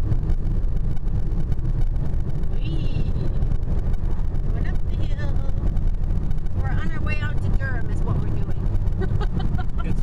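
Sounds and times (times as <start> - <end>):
car engine rumble: 0.0 - 10.0
car tyre noise: 0.0 - 10.0.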